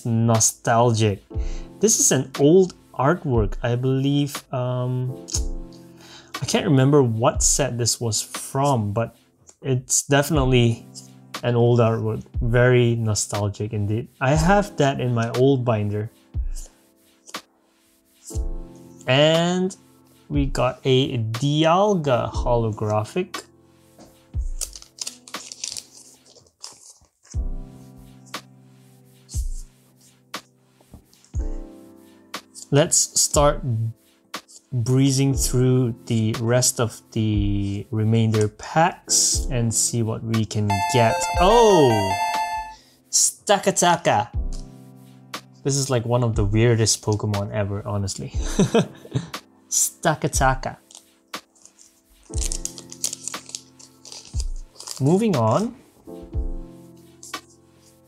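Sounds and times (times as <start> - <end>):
background music with deep beat: 0.0 - 9.4, 10.4 - 11.5, 12.1 - 20.7, 22.4 - 24.8, 27.4 - 32.6, 44.4 - 45.8, 54.4 - 58.0
trading cards rustling: 24.4 - 27.5, 31.0 - 31.4, 50.8 - 55.7, 57.1 - 58.0
foil pack crinkling: 24.5 - 27.4, 50.8 - 55.3.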